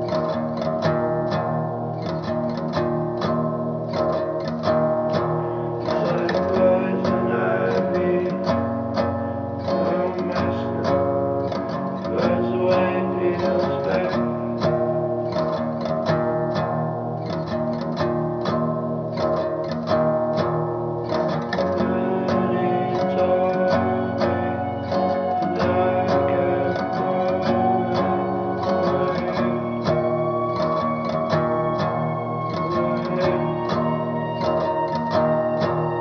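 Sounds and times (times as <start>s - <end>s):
guitar music plucked and strummed: 0.0s - 36.0s.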